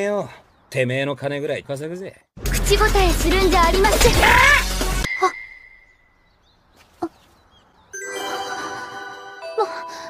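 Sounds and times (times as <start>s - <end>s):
faint high chirps: 5.1s - 6.6s.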